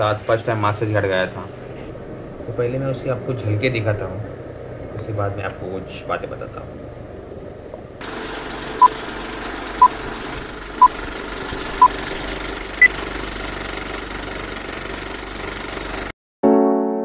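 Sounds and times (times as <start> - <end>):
film projector rattle and hiss: 8.0 - 16.1.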